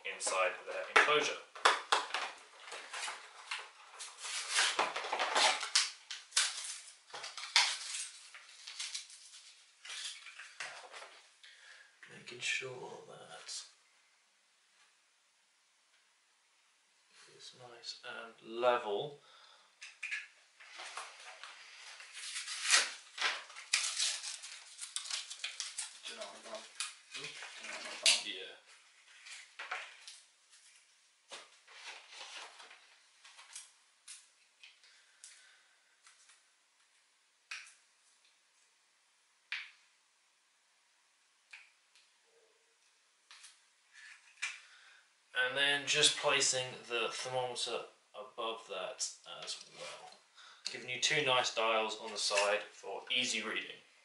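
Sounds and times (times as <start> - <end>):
plastic packaging crinkling: 2.3 - 10.6, 21.9 - 28.3.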